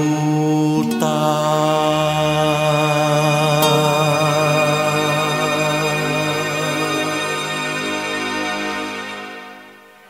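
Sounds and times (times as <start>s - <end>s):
male voice singing ballad: 0.0s - 7.5s
sustained accompaniment: 0.0s - 10.0s.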